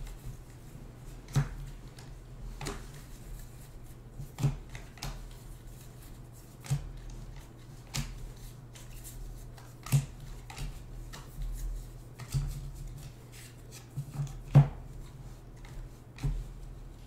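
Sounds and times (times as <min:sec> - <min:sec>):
faint steady hum: 0:00.0 - 0:17.0
cards snapping and rustling: 0:06.5 - 0:11.3.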